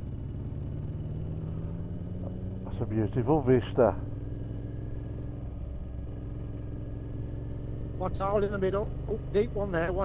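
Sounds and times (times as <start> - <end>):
motorcycle engine running steadily: 0.0 - 10.0.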